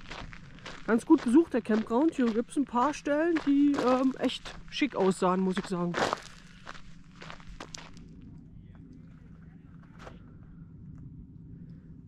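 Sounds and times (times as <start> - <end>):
footsteps on gravel: 0.0 - 8.1.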